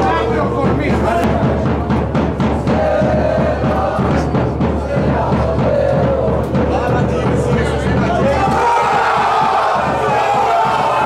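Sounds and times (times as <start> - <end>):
football supporters shouting and cheering: 0.0 - 11.0.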